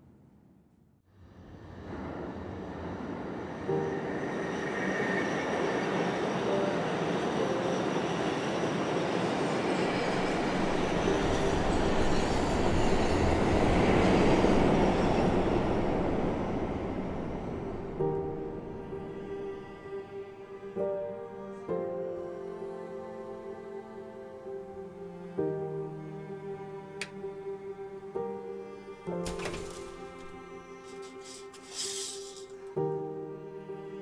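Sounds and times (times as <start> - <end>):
elevated train passing: 1.1 - 34.0
wheels squealing: 29.7 - 32.6.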